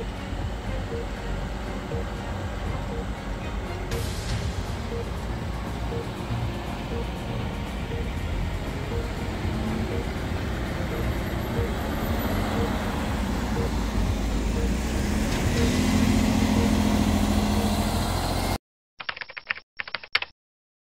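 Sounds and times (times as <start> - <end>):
diesel engines running under load: 0.0 - 18.6.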